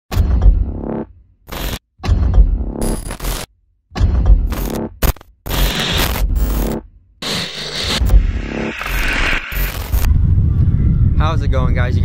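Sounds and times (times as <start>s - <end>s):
harsh glitch effects: 0.8s - 1.8s, 2.8s - 3.5s, 4.5s - 10.1s.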